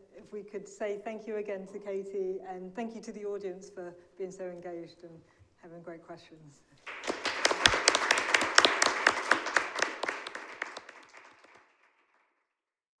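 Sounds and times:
audience applauding: 0:06.8 - 0:12.2.

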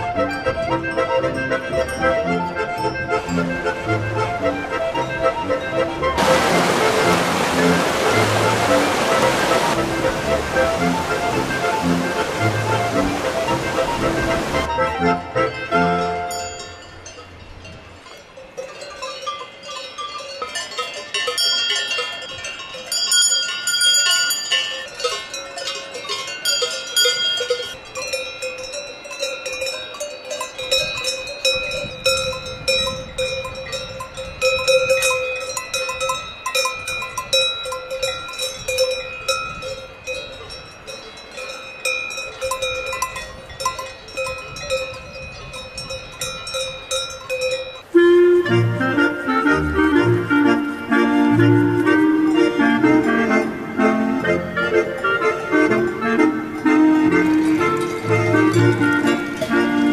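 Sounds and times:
cowbells clanking: 0:00.0 - 0:06.5, 0:11.0 - 0:48.0, 0:51.9 - 0:59.9.

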